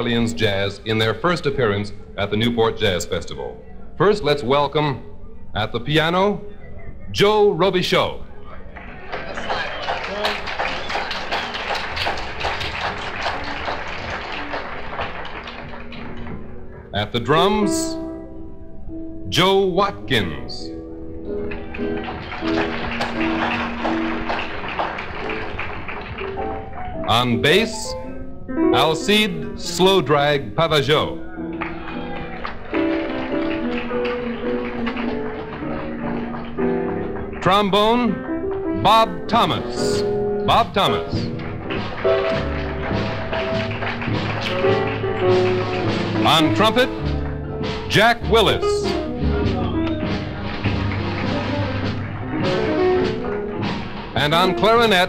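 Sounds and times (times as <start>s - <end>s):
audience applauding: 8.4s - 17.5s, 21.3s - 27.8s, 31.2s - 38.7s, 39.4s - 55.0s
live jazz band playing: 41.3s - 55.0s.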